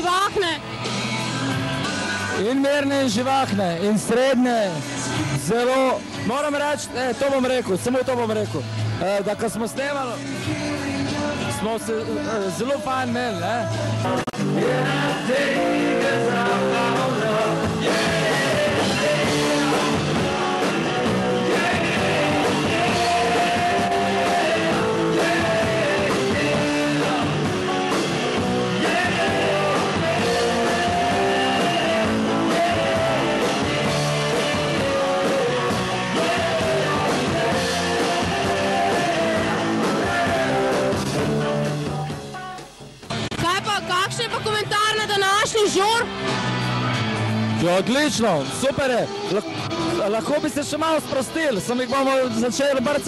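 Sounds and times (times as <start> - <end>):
rock band playing live: 0.0 - 53.0
person singing: 13.3 - 42.7.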